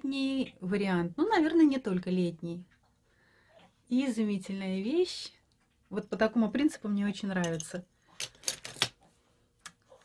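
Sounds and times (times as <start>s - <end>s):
jewellery clicking and clattering: 7.4s - 9.0s.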